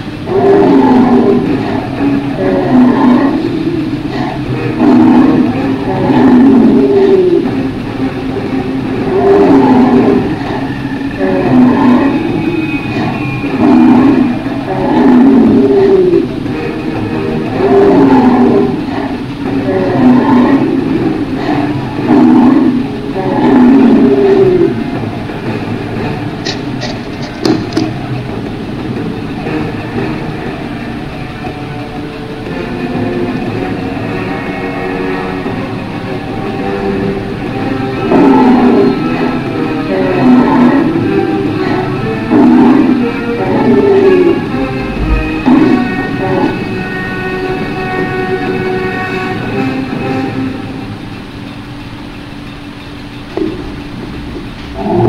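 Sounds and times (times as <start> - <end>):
steady background noise: 0.0 - 55.0
drawn-out creature calls: 0.2 - 7.6, 32.5 - 49.1.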